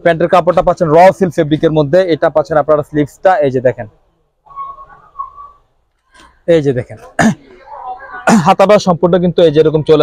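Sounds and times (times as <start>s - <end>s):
soft whistle-like tone: 4.4s - 5.8s.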